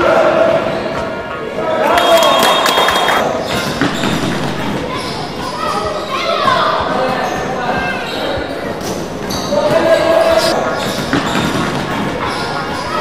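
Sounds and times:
players' voices and calls: 0:00.0 - 0:13.0
basketball bouncing on wooden floor: 0:03.4 - 0:05.6.

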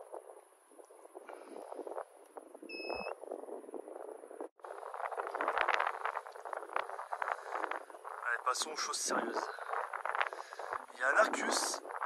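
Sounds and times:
wind and rain on microphone: 0:00.0 - 0:12.0
short electronic beep: 0:02.7 - 0:03.2.

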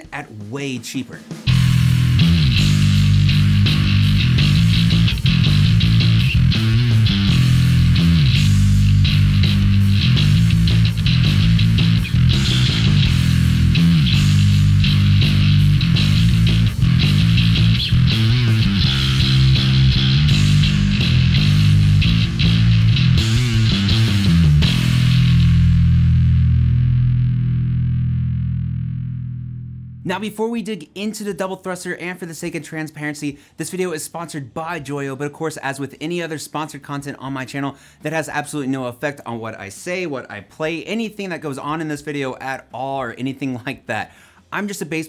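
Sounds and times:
distorted electric bass riff: 0:01.3 - 0:30.2.

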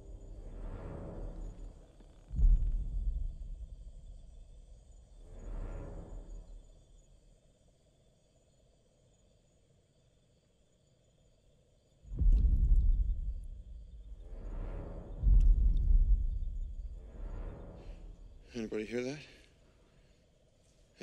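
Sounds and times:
deep booming footfall thuds: 0:02.3 - 0:04.6, 0:12.1 - 0:14.4, 0:15.2 - 0:17.2.

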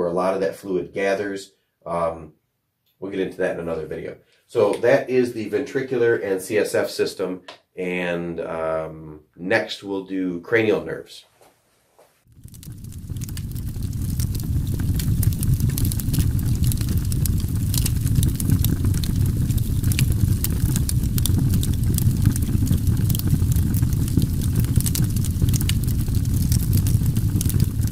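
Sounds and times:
low rumble with crackles and pops: 0:12.3 - 0:27.9.

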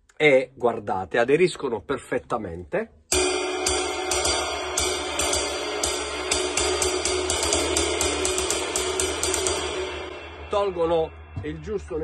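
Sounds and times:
drumstick striking damped cymbal: 0:03.1 - 0:12.0.

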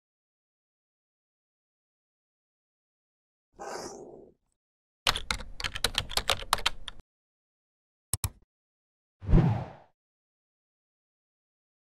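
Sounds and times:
keyboard typing: 0:05.1 - 0:07.0, 0:08.1 - 0:08.4.

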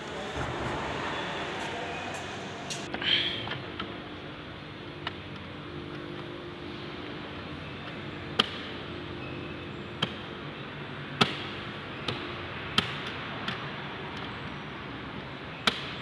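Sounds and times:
low workshop hum: 0:00.0 - 0:10.0.

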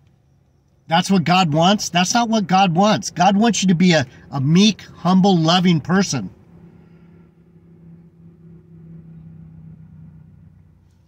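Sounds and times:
low hum in car cabin: 0:00.0 - 0:11.0.

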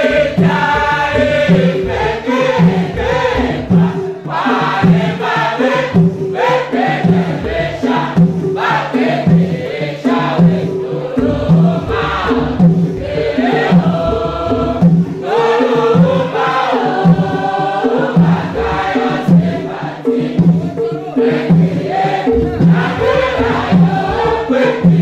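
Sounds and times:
mixed choir singing: 0:00.0 - 0:25.0.

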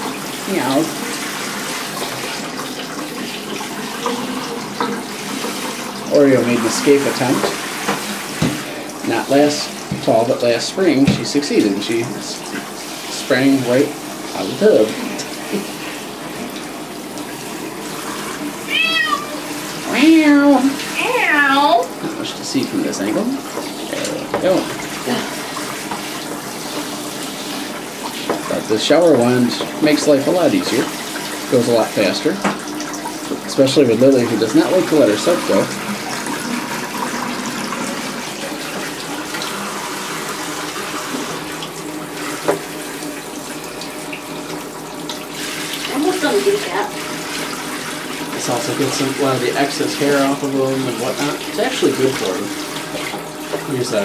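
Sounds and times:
shower spraying water into bathtub: 0:00.0 - 0:54.0
shower spray: 0:10.8 - 0:16.6
cat meowing: 0:18.7 - 0:19.5.

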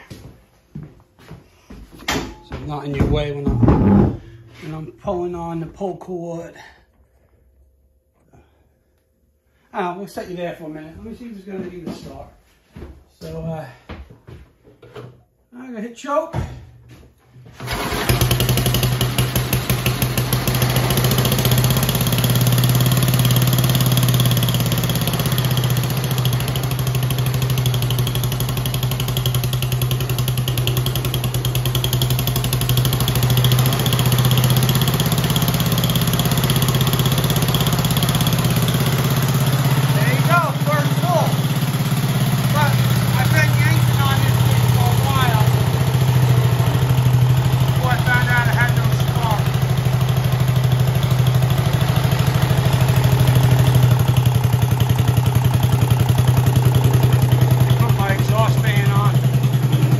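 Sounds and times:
single-cylinder engine running: 0:17.6 - 0:59.9.

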